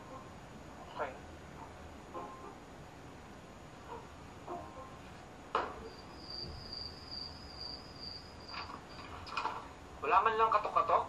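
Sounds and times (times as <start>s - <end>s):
crickets chirping: 5.6s - 9.3s.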